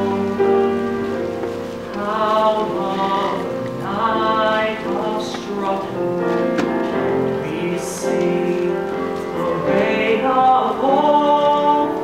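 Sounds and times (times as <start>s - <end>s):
stage cast singing held notes: 1.9s - 12.0s.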